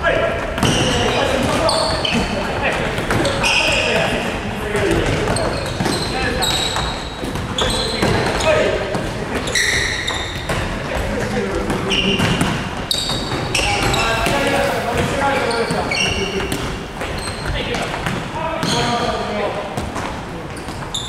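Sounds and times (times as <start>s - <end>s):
shoe squeaks: 0.6s - 10.9s, 11.8s - 17.9s, 18.6s - 19.2s, 20.5s - 21.0s.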